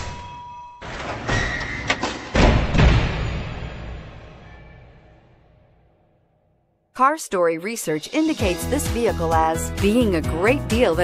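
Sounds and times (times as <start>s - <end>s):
deep impact hits: 2.3s - 5.4s.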